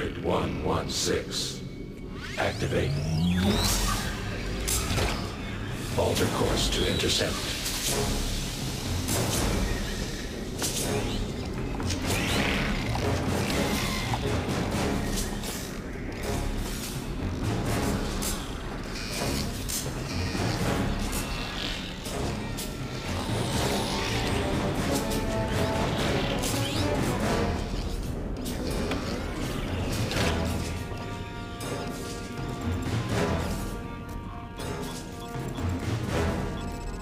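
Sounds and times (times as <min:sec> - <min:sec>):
film score: 0:00.0 - 0:37.0.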